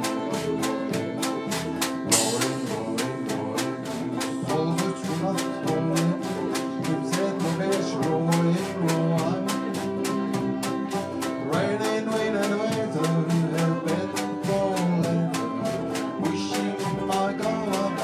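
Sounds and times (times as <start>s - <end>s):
double bass: 0.0s - 18.0s
fiddle: 0.0s - 18.0s
live band playing: 0.0s - 18.0s
steady beat: 0.0s - 18.0s.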